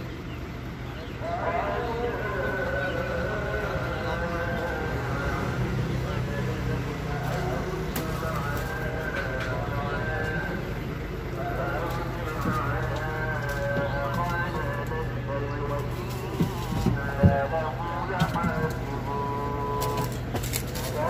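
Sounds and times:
truck engine idling: 0.0s - 21.0s.

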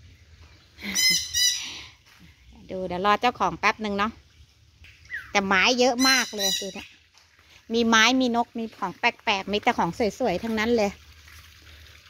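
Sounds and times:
bird calling: 0.8s - 1.9s, 4.8s - 7.1s.

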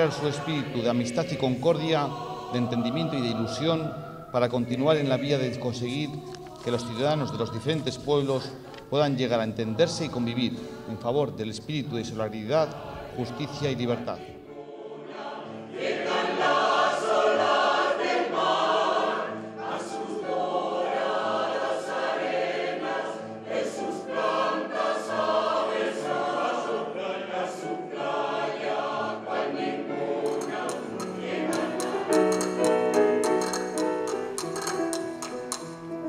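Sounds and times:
choir singing sustained chords: 0.0s - 34.8s
fast rhythmic tapping: 30.3s - 35.9s.

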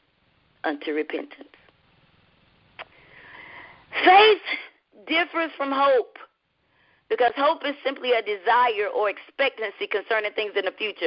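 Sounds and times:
woman inhaling breath: 2.9s - 3.9s.

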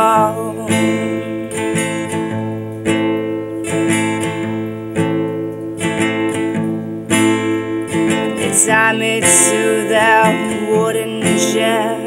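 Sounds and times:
acoustic guitar strummed: 0.0s - 12.0s.

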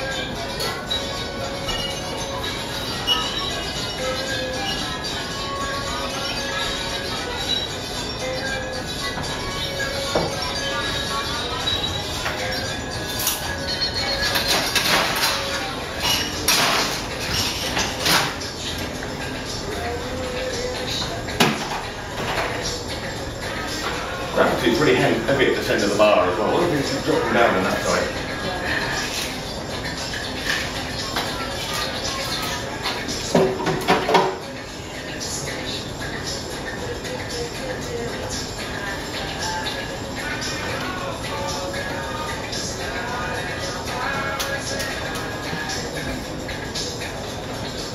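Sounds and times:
background music: 0.0s - 47.9s
cocktail shakers and glasses clinking: 11.6s - 18.6s.

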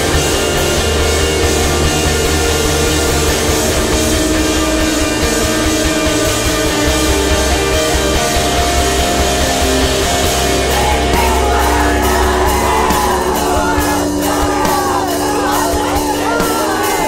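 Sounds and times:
loud electric guitars and heavy bass: 0.0s - 17.0s.

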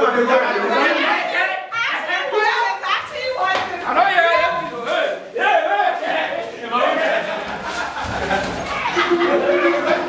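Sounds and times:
adults talking excitedly: 0.0s - 10.0s
people laughing: 6.9s - 10.0s.

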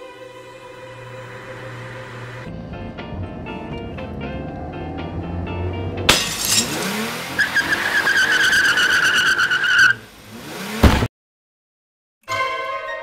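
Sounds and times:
orchestral music: 0.0s - 7.0s, 12.2s - 13.0s
tyre squealing: 7.3s - 10.1s.

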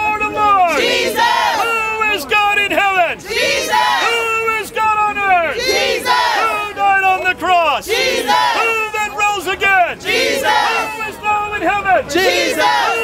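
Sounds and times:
people shouting: 0.2s - 2.2s, 3.2s - 6.8s, 7.8s - 9.0s, 10.0s - 11.1s, 12.1s - 13.0s.

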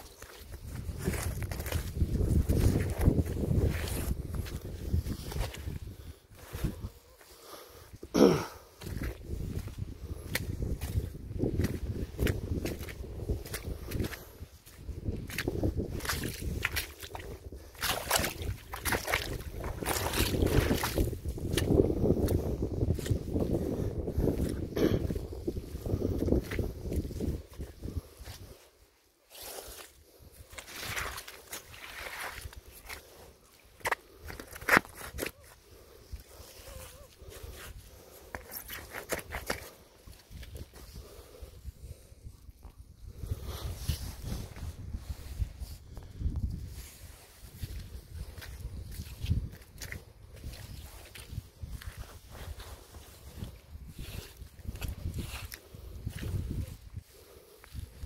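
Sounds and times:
footsteps squelching in mud: 0.0s - 7.4s, 8.7s - 28.6s, 29.2s - 41.4s, 46.4s - 58.0s.

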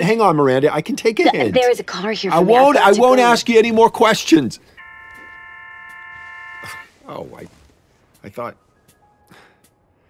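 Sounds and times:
telephone line tone: 4.8s - 6.9s.

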